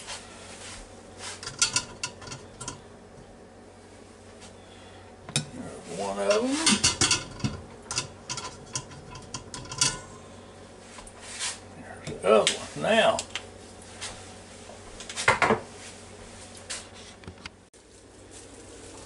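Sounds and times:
metal tongs clinking on plate: 0:01.4 - 0:02.8, 0:06.3 - 0:10.1.

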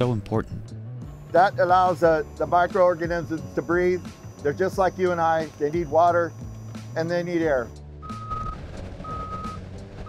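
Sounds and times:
vehicle backup alarm beeping: 0:01.0 - 0:09.8.

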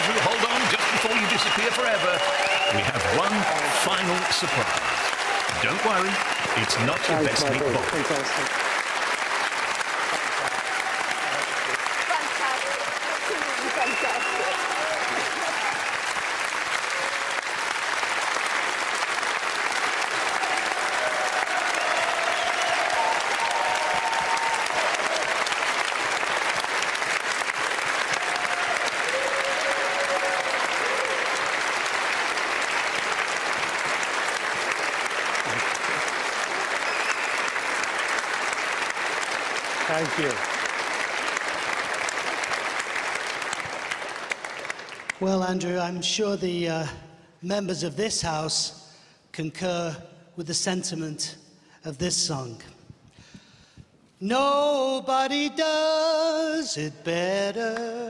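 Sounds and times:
audience applauding: 0:00.0 - 0:45.6.

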